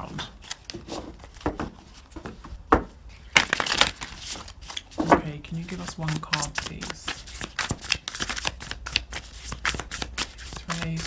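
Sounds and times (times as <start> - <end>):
cards being shuffled: 0.0 - 2.4, 3.3 - 11.0.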